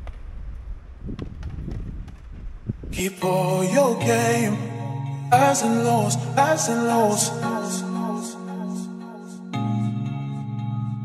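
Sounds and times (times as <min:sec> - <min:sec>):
wind buffeting microphone: 0:00.0 - 0:03.1.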